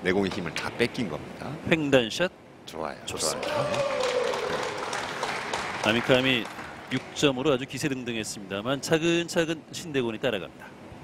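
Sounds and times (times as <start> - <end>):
audience applauding: 3.2 - 7.6.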